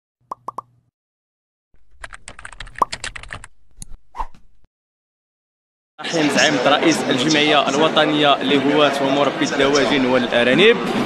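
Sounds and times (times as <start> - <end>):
keyboard typing clicks: 2.0 - 3.5.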